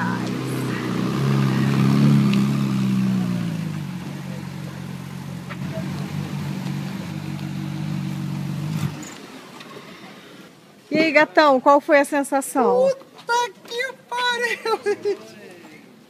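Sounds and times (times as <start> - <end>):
sports car engine passing: 0.0 - 10.7.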